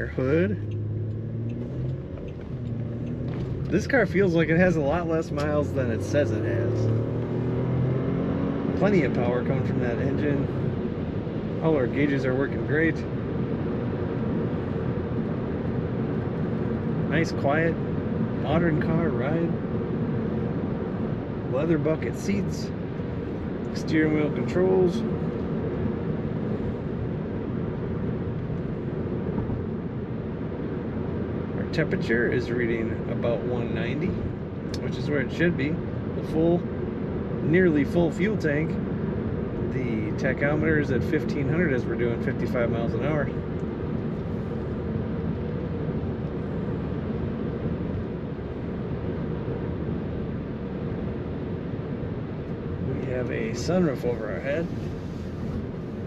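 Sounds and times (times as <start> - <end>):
engine and tyre noise in car cabin: 0.0 - 56.0.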